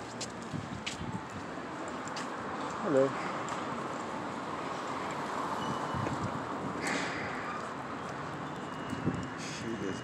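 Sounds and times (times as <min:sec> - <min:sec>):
footsteps on concrete: 0:00.0 - 0:02.8
street noise: 0:00.0 - 0:10.0.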